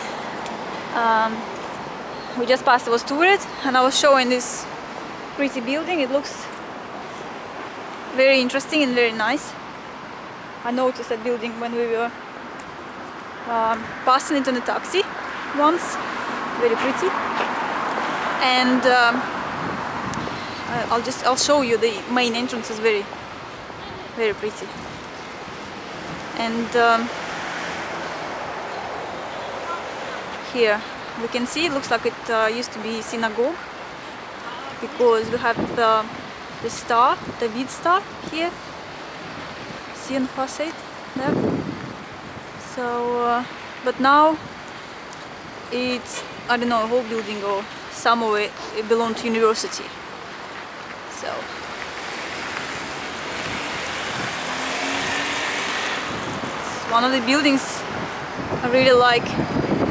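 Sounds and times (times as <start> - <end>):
street traffic: 0.0 - 59.9
vehicle passing: 23.7 - 32.8, 51.3 - 59.9.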